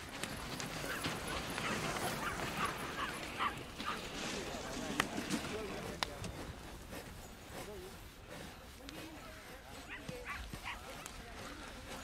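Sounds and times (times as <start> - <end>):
dog high calls: 0.8 - 4.1.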